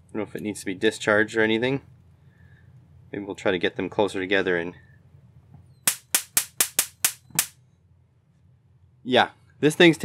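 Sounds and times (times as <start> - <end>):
electric arc snapping: 5.9 - 7.6.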